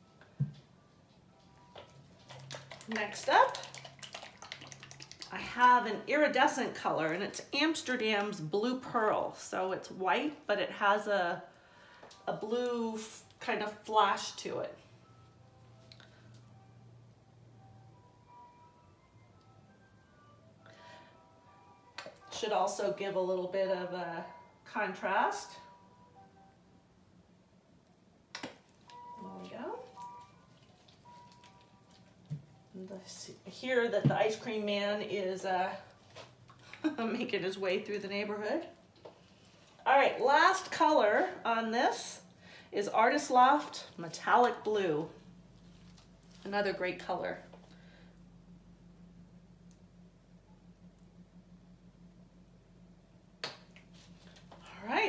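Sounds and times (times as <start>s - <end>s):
low hum: 5.2s - 55.0s.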